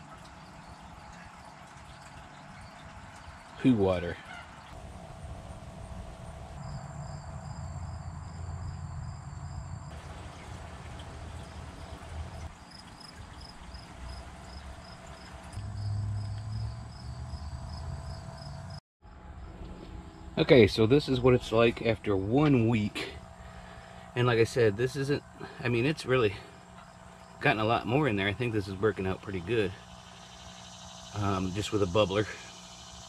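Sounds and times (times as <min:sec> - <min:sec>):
insect chirping: 0:04.3 - 0:10.5, 0:11.2 - 0:20.4, 0:23.2 - 0:33.0.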